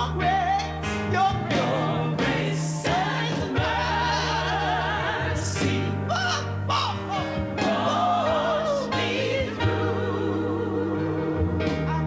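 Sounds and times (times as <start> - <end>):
band accompaniment: 0.0 - 12.0.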